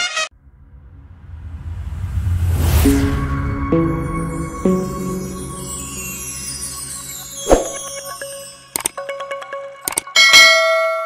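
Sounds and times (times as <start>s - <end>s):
bright bell ding: 10.2s - 11.0s.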